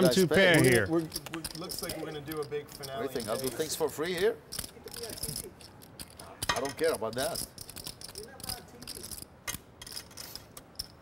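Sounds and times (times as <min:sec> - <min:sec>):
poker chips clicking: 0:00.1 - 0:11.0.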